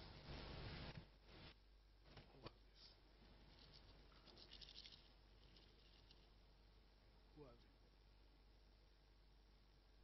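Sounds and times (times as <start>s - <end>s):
faint rustling: 0.3s - 6.4s.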